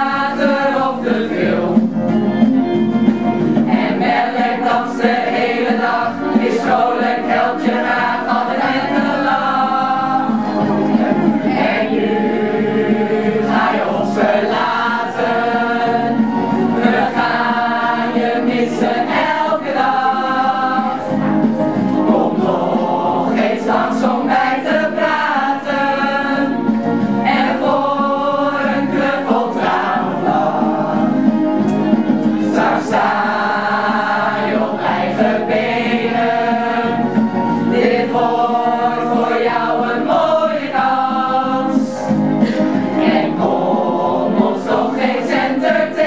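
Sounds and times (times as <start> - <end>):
choir of women singing: 0.0 - 2.2, 3.6 - 31.5, 32.2 - 46.0.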